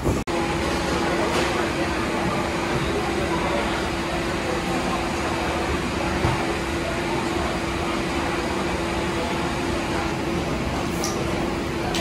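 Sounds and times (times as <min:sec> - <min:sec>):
food hall background noise: 0:00.0 - 0:12.0.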